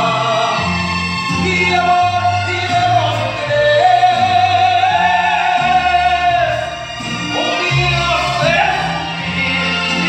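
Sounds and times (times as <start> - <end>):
backing music with bass line: 0.0 - 10.0
man singing into microphone: 0.0 - 10.0.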